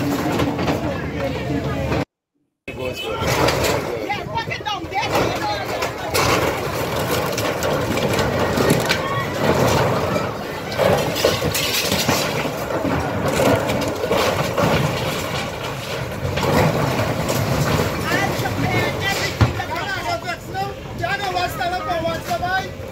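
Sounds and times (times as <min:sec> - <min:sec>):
people's voices: 0:00.0 - 0:02.1, 0:02.7 - 0:14.6, 0:17.7 - 0:22.9
timber and metal sheeting cracking: 0:03.1 - 0:22.9.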